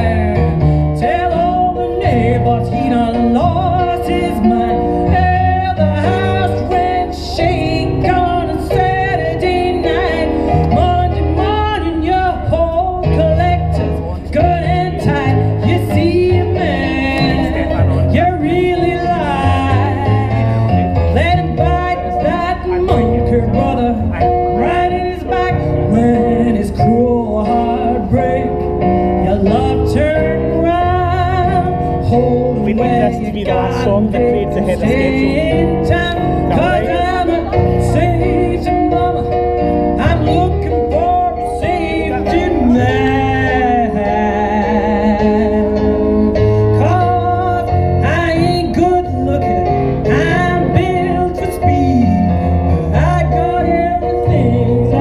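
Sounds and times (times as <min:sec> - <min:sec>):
keyboard accompaniment: 0:00.0 - 0:55.0
person singing blues: 0:00.0 - 0:55.0.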